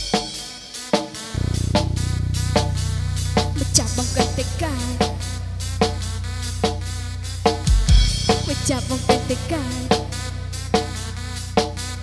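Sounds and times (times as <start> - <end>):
band hit: 1.4 - 8.5
short accented notes: 1.4 - 11.9
low buzzing drone: 1.4 - 12.0.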